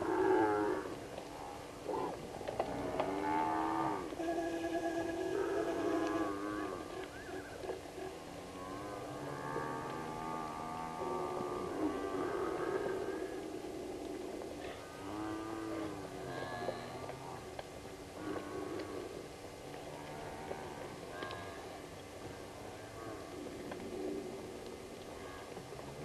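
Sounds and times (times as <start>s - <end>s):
buffalo herd lowing: 0.0s - 26.0s.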